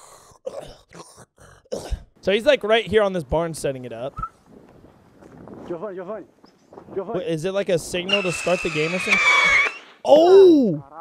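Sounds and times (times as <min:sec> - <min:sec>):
man making raspy throat noises: 0:00.0 - 0:02.2.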